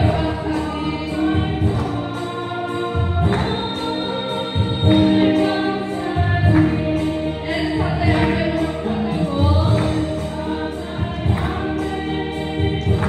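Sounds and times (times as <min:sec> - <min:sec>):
low instrumental backing: 0:00.0 - 0:13.0
women's choir singing a hymn: 0:00.0 - 0:13.0.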